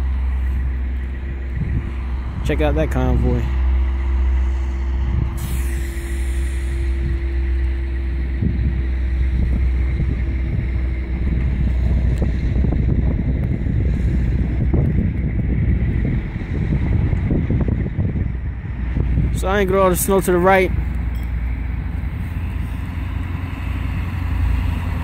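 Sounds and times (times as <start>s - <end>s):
vehicle engine rumbling: 0.0s - 25.0s
wind buffeting microphone: 0.0s - 25.0s.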